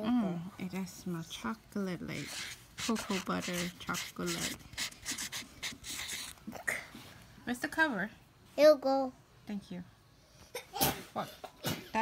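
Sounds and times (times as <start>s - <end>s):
marker scratching across paper: 2.0s - 6.5s.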